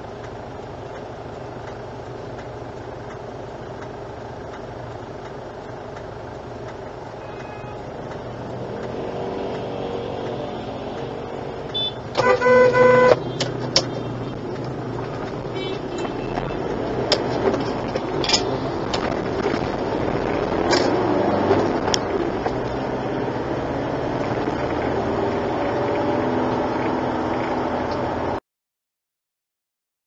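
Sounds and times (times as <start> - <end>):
car engine and tyre noise: 0.0 - 28.4.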